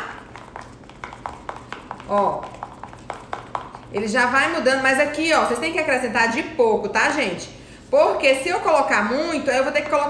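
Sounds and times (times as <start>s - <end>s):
spoon tapping plastic bowl: 0.0s - 4.0s.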